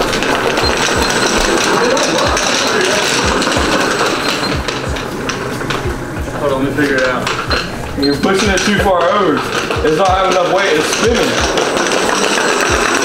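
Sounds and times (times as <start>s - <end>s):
wheels rattling on tile: 0.0s - 13.0s.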